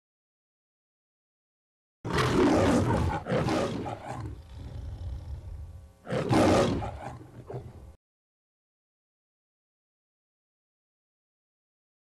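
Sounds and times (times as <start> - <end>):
lion roaring: 2.1 - 7.8.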